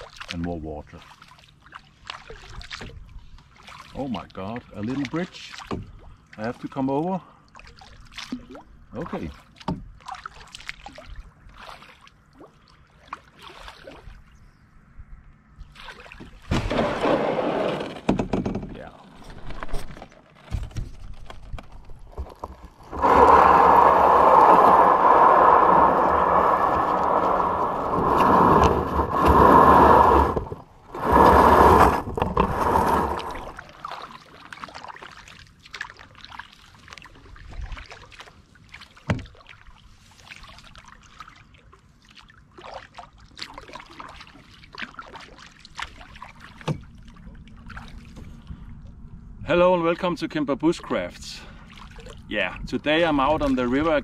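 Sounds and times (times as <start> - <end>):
canoe hull scraping over gravel: 16.5 - 33.8.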